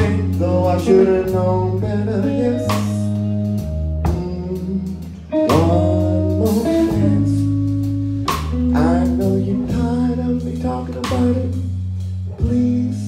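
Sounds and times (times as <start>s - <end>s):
live blues band playing: 0.0s - 13.0s.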